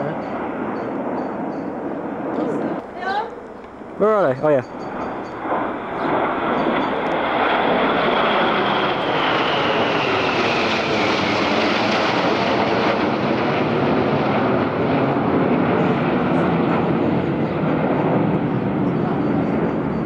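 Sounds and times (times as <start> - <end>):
high jet whine falling in pitch: 0.0 - 20.0
jet engine roar: 0.0 - 20.0.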